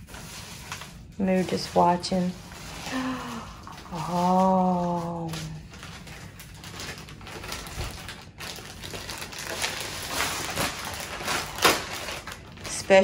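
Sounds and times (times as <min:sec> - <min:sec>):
plastic packaging crinkling: 0:00.0 - 0:13.0.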